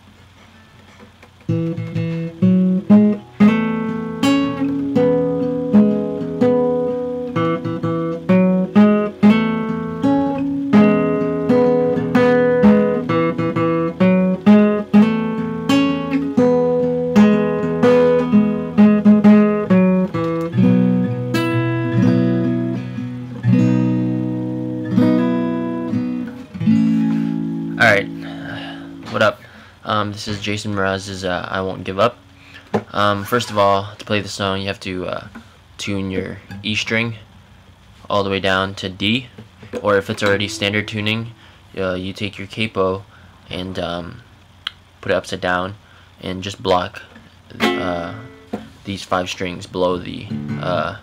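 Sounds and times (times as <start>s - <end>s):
fingerpicked acoustic guitar: 0.0s - 38.1s, 38.8s - 43.6s, 45.8s - 51.0s.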